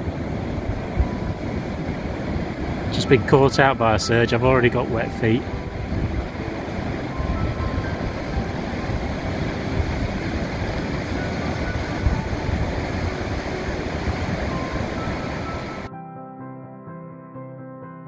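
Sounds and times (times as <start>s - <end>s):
heavy surf breaking: 0.0s - 15.9s
strong wind: 0.0s - 15.9s
soft piano music: 0.0s - 18.0s.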